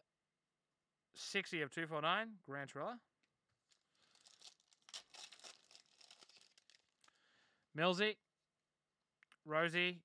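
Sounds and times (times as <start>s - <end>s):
foil wrapper crinkling: 3.6s - 7.1s.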